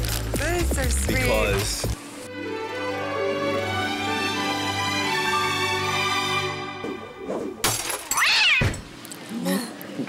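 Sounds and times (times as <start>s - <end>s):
background music: 0.0s - 7.8s
cartoon cat meow: 8.2s - 8.8s.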